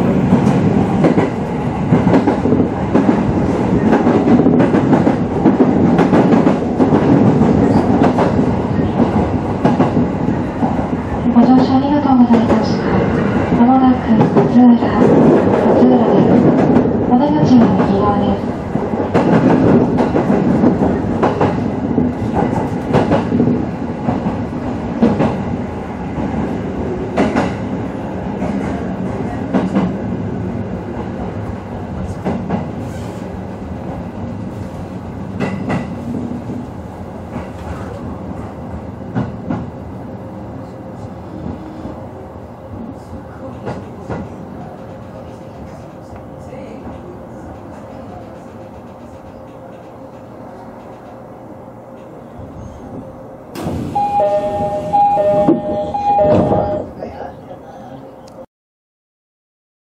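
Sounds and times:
electric train braking: 53.6s - 56.9s.

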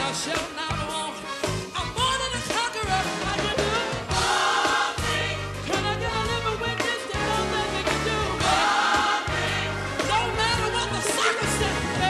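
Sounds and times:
held bass notes: 0.0s - 12.0s
live band playing: 0.0s - 12.0s
gospel choir singing: 3.3s - 12.0s.

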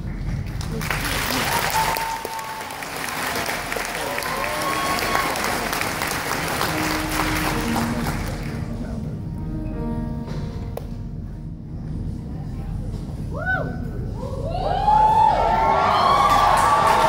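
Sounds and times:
audience applauding and cheering: 0.0s - 8.8s, 14.5s - 17.0s.

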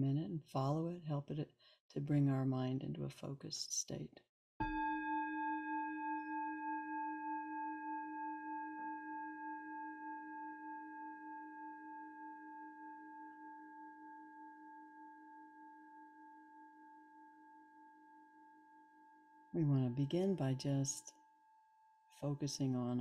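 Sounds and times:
meditation bell ringing: 4.6s - 22.2s.

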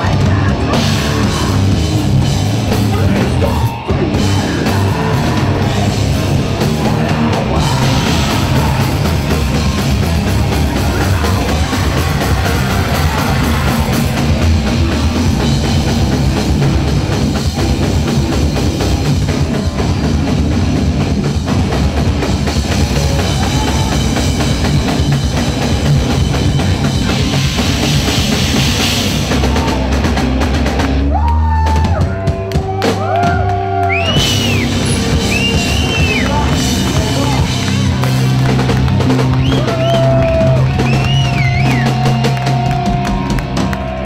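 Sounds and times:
bass guitar: 0.0s - 44.0s
distorted electric guitars: 0.0s - 44.0s
pounding drum kit: 0.0s - 44.0s.

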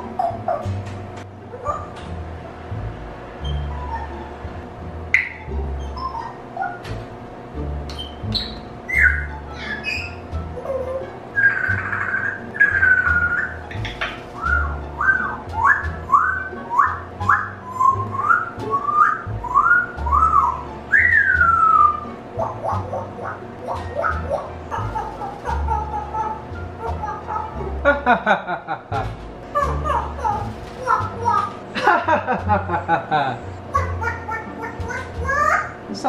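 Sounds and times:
parrot whistling: 1.5s - 2.0s, 3.4s - 4.4s, 5.1s - 6.9s, 7.9s - 27.6s.

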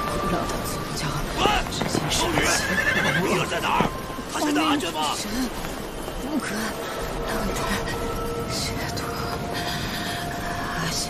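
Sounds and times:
horse neighing: 2.2s - 3.8s.

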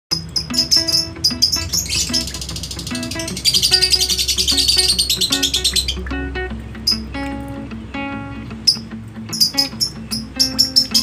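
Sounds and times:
plucked background music: 0.1s - 11.0s
small birds chirping and trilling: 0.1s - 11.0s.

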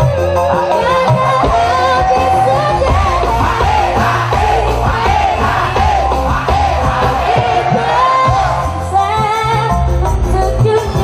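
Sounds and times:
woman singing: 0.0s - 3.7s, 7.8s - 11.0s
heavy bass: 1.3s - 10.6s
hand drums: 1.4s - 8.8s.

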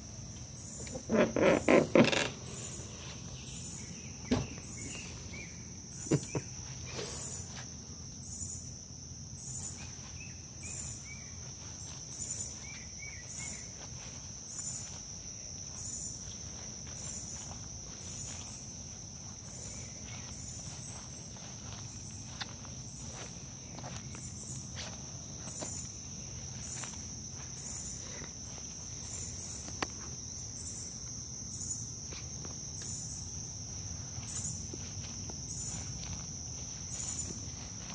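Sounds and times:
high-pitched insect trill: 0.0s - 37.9s
pulsed insect call: 0.0s - 37.9s
faint footsteps: 0.3s - 8.2s, 9.6s - 30.4s, 32.0s - 37.9s.

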